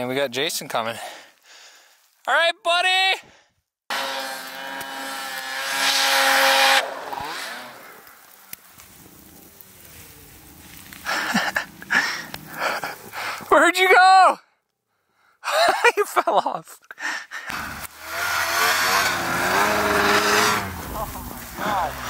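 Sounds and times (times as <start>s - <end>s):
snowmobile engine revving: 3.9s - 13.2s, 17.5s - 22.0s.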